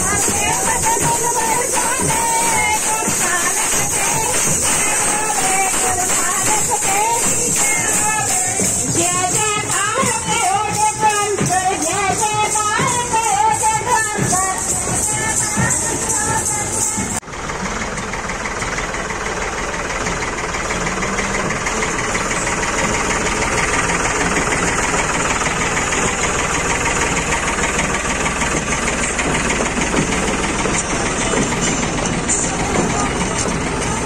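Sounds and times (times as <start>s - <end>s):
tractor diesel engine running: 0.0s - 34.0s.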